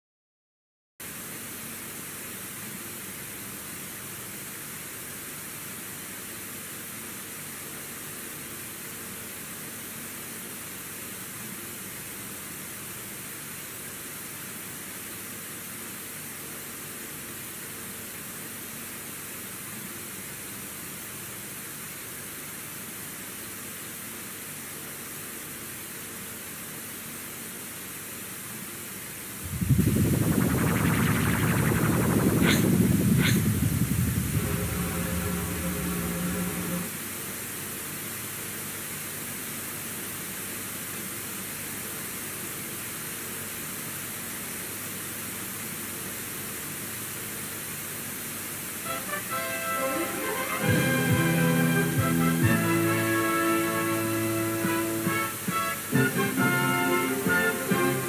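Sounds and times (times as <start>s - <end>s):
faint low hum: 29.4s - 37.0s
tape hiss: 29.4s - 37.4s, 48.7s - 58.0s
logo soundtrack music: 29.5s - 37.0s.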